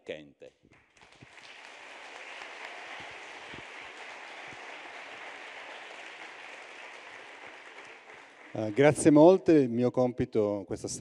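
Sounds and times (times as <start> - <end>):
audience applauding: 0.7 - 9.4.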